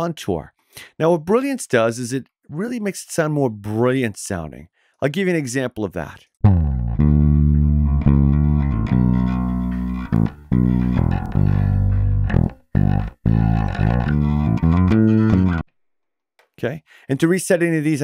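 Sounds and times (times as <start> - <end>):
bright bass guitar line: 6.4 - 15.6.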